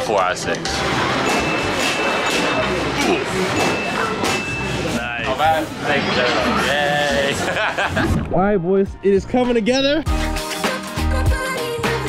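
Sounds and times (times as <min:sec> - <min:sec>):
arcade background noise: 0:00.0 - 0:10.4.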